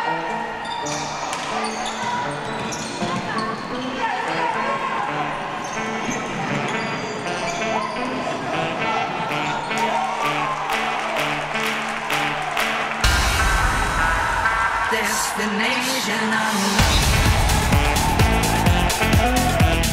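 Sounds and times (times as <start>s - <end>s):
voices in a hall: 0.0s - 11.6s
music in a hall: 0.0s - 19.9s.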